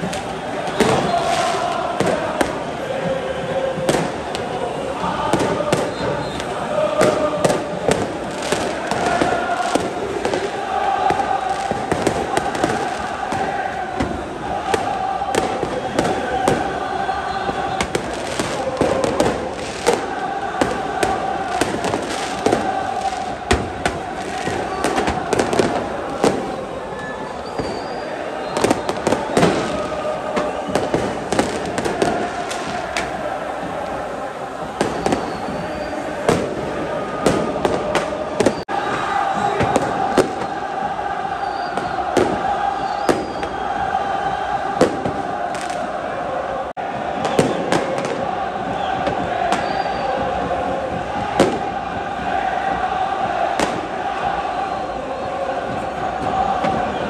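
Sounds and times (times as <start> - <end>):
firecrackers banging: 0.0 - 57.0
stadium crowd chanting: 0.0 - 57.0.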